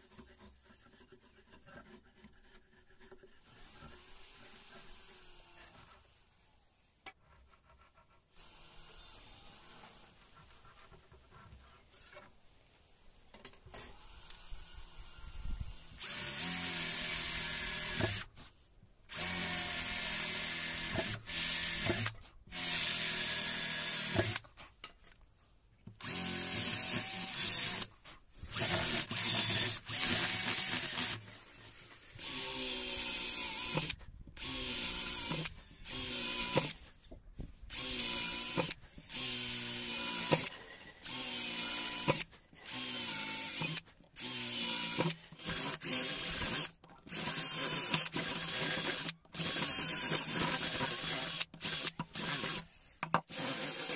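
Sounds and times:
cordless drill boring wood: 3.0 - 6.2, 8.4 - 10.3, 13.8 - 18.4, 19.1 - 24.5, 25.9 - 37.0, 37.7 - 53.9.

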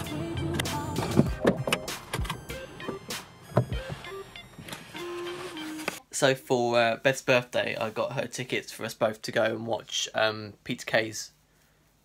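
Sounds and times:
background music: 0.0 - 6.4.

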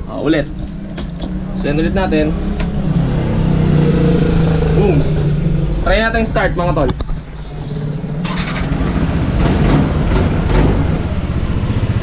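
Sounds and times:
scooter engine running: 7.1 - 12.0
electric starter cranking: 8.2 - 10.6.

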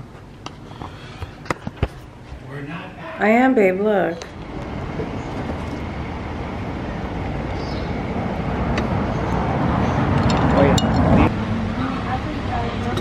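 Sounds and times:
car passing by: 4.5 - 13.0.

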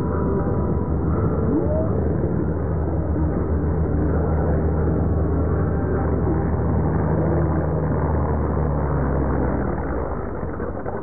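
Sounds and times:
aircraft engines droning: 0.0 - 11.0.

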